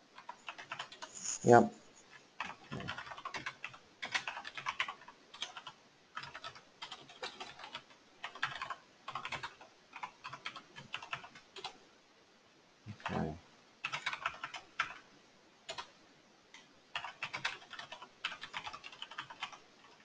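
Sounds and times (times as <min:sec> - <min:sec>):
computer keyboard typing: 0:00.2 - 0:01.2, 0:02.4 - 0:11.8, 0:13.8 - 0:15.0, 0:15.7 - 0:15.9, 0:16.9 - 0:20.0.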